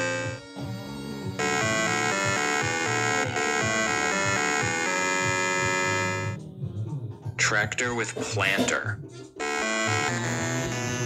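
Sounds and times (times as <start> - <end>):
electronic music with pulsing bass: 0.0 - 6.4, 9.2 - 11.0.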